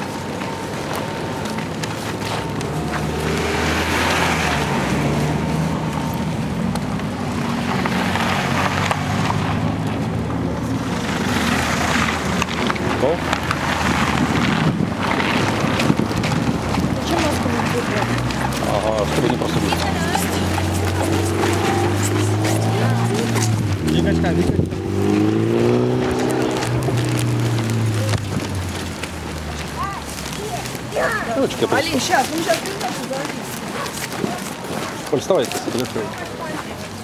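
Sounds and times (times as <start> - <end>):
indistinct voices: 0.0 - 37.0
vehicle traffic hum: 0.0 - 37.0.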